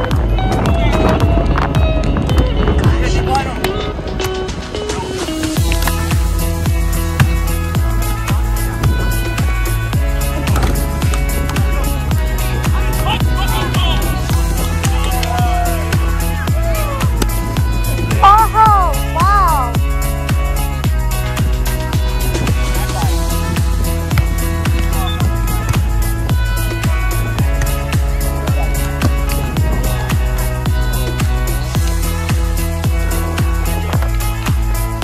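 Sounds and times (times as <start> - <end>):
held music tones: 4.2 - 35.0
deep drum hits: 5.6 - 11.9
steady kick drum: 5.6 - 35.0.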